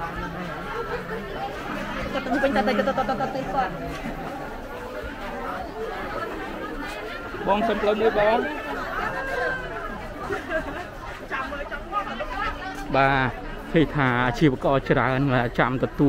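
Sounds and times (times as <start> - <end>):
chatter of shoppers and vendors: 0.0 - 16.0.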